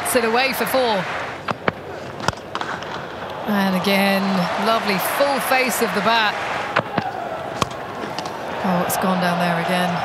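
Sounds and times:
stadium crowd murmur: 0:00.0 - 0:10.0.

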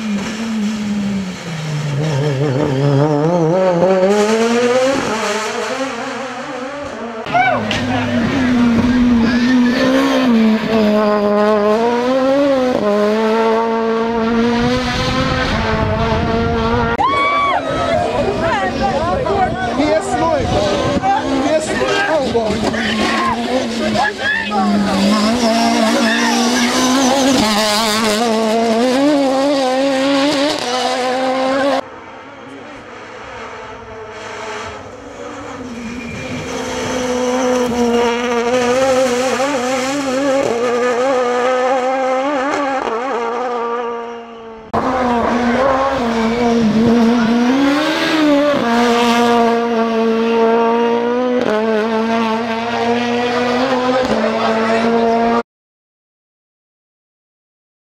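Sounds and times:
rally car engine revving: 0:00.0 - 0:17.0, 0:17.8 - 0:55.4.

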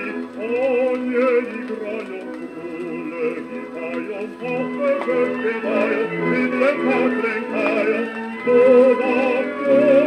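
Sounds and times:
old orchestral recording: 0:00.0 - 0:10.0.

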